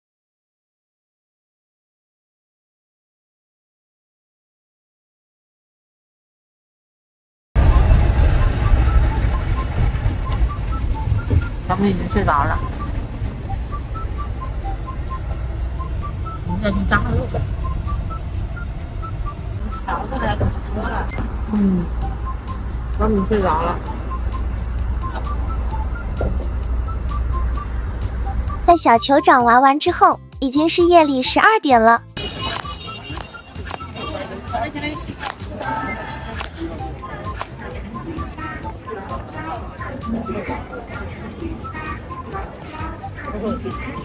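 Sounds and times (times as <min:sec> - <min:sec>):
crowd and street noise: 0:07.6 - 0:44.0
music playing: 0:07.6 - 0:44.0
road and engine rumble: 0:07.6 - 0:44.0
murmur of voices: 0:32.2 - 0:44.0.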